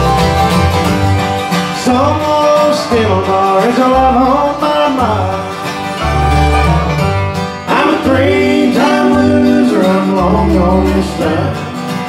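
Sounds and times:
bluegrass band playing: 0:00.0 - 0:12.0.

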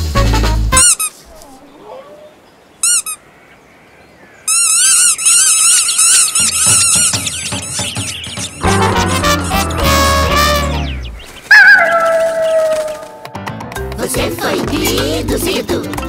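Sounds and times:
swing music: 0:00.0 - 0:01.0, 0:06.3 - 0:11.2, 0:11.8 - 0:16.0
cartoon bird chirping: 0:04.5 - 0:13.2.

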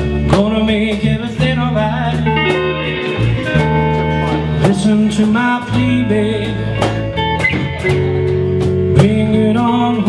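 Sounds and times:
person singing: 0:00.0 - 0:10.0
slow blues with guitars: 0:00.0 - 0:10.0.

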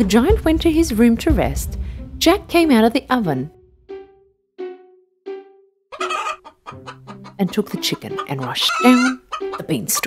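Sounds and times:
music of short repeated notes: 0:03.5 - 0:10.0
cartoon hen clucking: 0:05.9 - 0:10.0.

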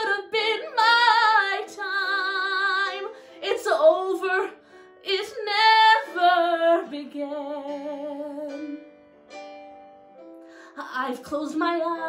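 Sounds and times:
woman singing ballad with vibrato: 0:00.0 - 0:08.8, 0:10.7 - 0:12.0.

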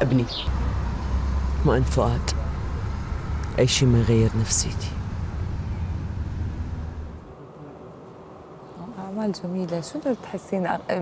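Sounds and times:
steady low rumble: 0:00.4 - 0:07.4.

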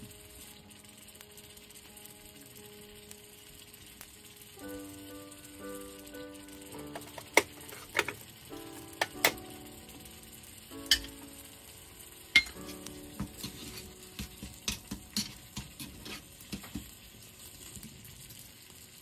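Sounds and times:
low steady hiss: 0:00.0 - 0:19.0
metal spoon clinking on pots: 0:10.8 - 0:11.2, 0:12.3 - 0:12.8, 0:13.4 - 0:16.8
spoon scraping a small pan: 0:13.4 - 0:13.9, 0:14.7 - 0:16.8.

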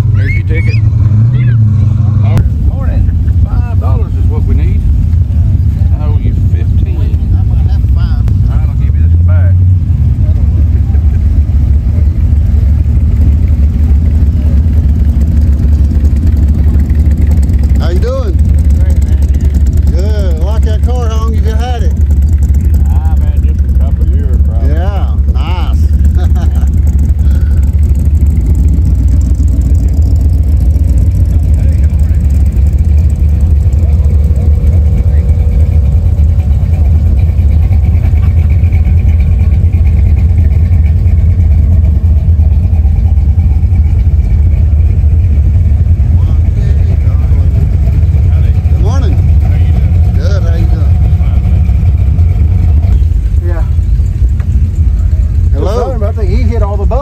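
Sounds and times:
car engines idling: 0:00.0 - 0:57.0
faint voices: 0:30.8 - 0:41.1.

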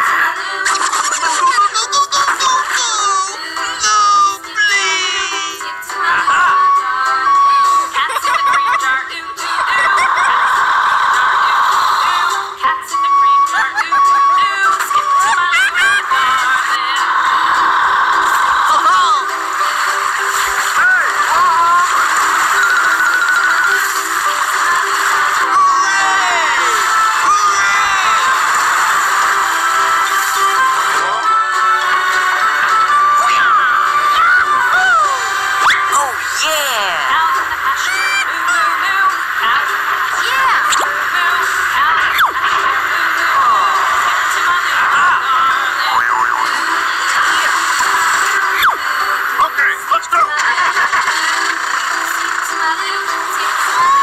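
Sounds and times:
synthesized singing voice: 0:00.0 - 0:54.0
toy truck tinny electronic tune: 0:17.6 - 0:31.8, 0:45.3 - 0:54.0
tinny electronic toy tune: 0:21.1 - 0:27.4.

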